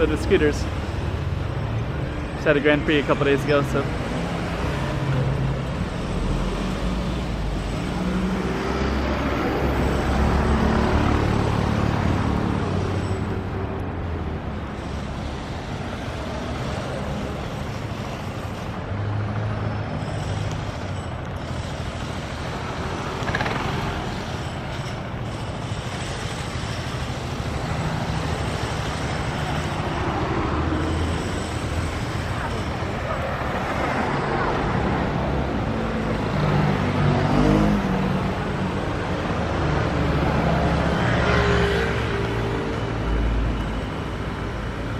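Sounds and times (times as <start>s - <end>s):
cars and scooters driving past: 0.0s - 44.9s.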